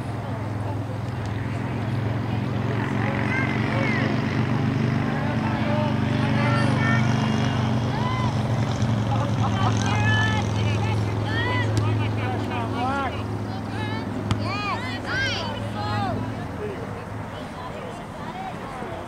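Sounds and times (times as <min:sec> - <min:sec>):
players and spectators shouting: 0:04.9 - 0:19.0.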